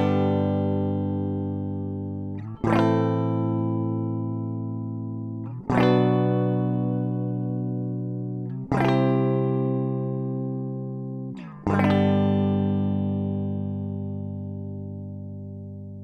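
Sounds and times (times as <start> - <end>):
electric guitar strumming chords: 0.0 - 16.0.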